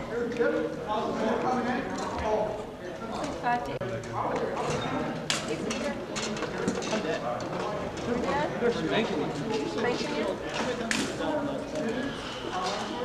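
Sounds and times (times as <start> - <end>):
voices in large hall: 0.0 - 13.0.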